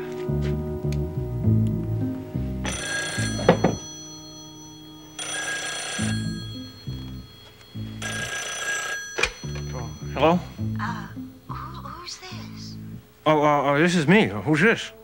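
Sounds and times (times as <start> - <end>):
low pulsing background music: 0.0 - 15.0
telephone bell ringing: 2.6 - 11.3
handset knock: 3.4 - 3.8.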